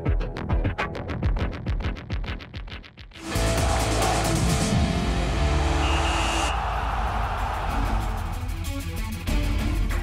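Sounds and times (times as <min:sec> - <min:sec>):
television theme music: 0:03.2 - 0:10.0.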